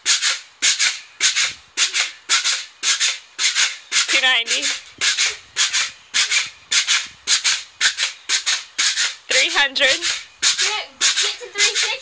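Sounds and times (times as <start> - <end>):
pogo stick bouncing on concrete: 0.1 - 12.0.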